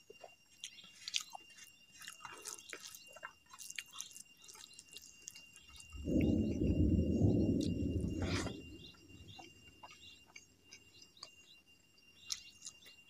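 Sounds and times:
wet chewing clicks and smacks: 0:00.0 - 0:13.0
thin high whine: 0:05.9 - 0:09.8.

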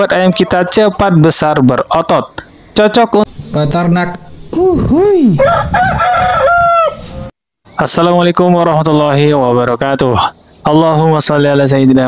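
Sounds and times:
rooster crowing: 0:05.3 - 0:07.3.

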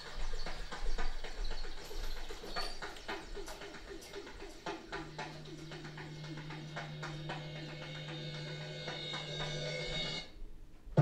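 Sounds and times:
low synthesizer note: 0:04.3 - 0:10.3.

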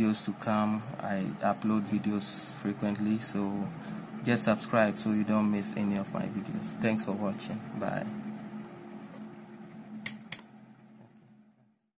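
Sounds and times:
low steady hum: 0:00.0 - 0:11.9
sharp plastic clicks: 0:10.0 - 0:10.5.

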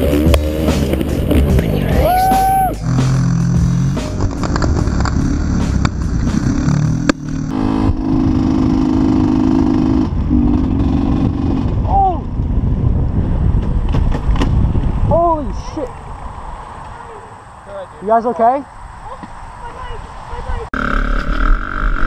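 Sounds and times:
wind noise on microphone: 0:00.0 - 0:16.6
dirt bike engines: 0:00.0 - 0:22.0.

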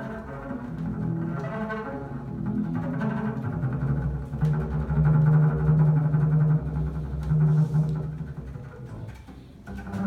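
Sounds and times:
bowed double bass low notes: 0:00.0 - 0:10.0.

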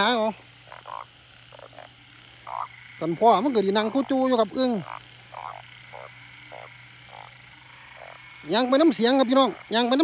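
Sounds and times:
frogs croaking: 0:00.0 - 0:10.0.

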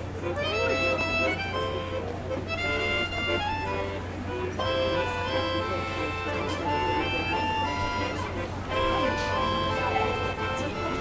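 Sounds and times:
accordion playing held notes: 0:00.0 - 0:11.0.

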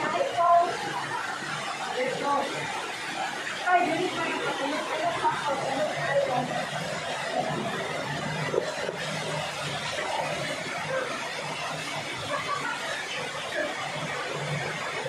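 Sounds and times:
faint voices and laughter: 0:00.0 - 0:15.0
waterfall pouring into pool: 0:00.0 - 0:15.0.

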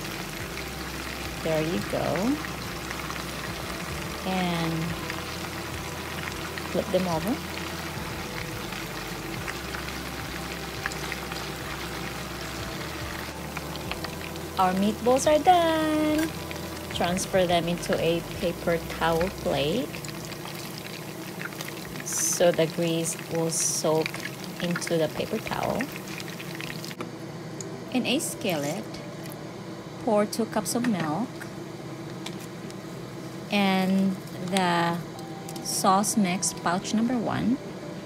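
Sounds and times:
meatballs sizzling in oil: 0:00.0 - 0:27.0
oil popping and crackling: 0:00.0 - 0:27.0.

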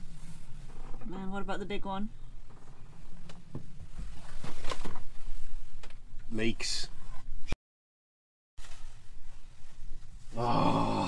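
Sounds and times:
short rustle: 0:08.6 - 0:10.3.

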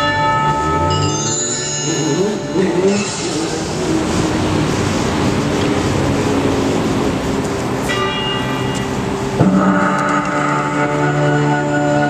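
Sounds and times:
chime-like tones: 0:00.0 - 0:03.6, 0:07.8 - 0:12.0
rushing noise wash: 0:00.0 - 0:12.0
low held electronic tone: 0:07.8 - 0:12.0.

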